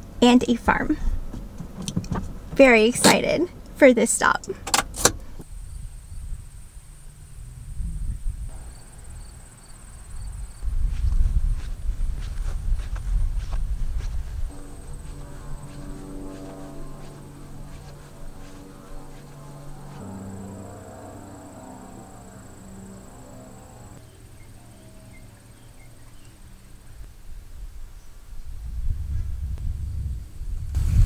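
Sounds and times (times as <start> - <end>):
low rumbling noise: 0.0 - 31.0
high-pitched insect buzz: 5.5 - 28.4
soft background music: 11.6 - 27.2.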